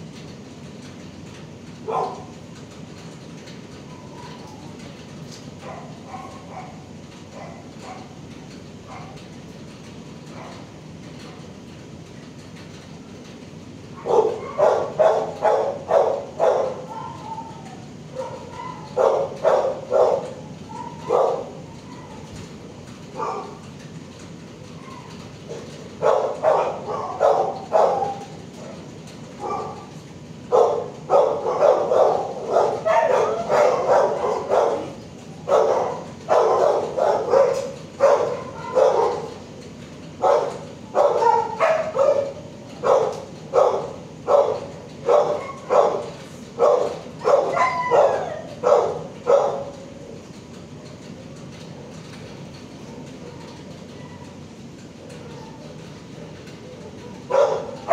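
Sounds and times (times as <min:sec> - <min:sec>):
dogs barking: 0:01.8 - 0:02.4, 0:05.6 - 0:09.2, 0:10.3 - 0:10.8, 0:14.0 - 0:22.3, 0:23.1 - 0:23.7, 0:24.8 - 0:39.6, 0:40.2 - 0:50.2, 0:56.6 - 0:57.9.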